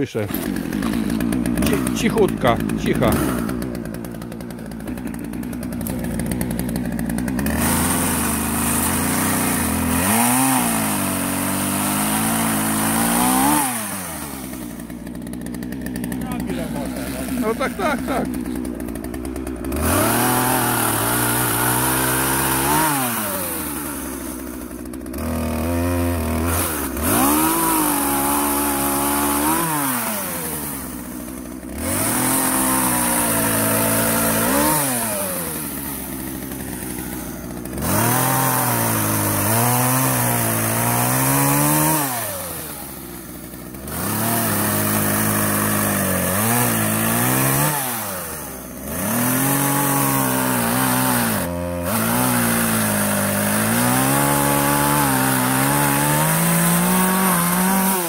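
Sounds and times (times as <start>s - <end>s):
chainsaw cutting wood: 0.0s - 58.0s
chainsaw idling: 0.0s - 58.0s
chainsaw revving: 0.0s - 58.0s.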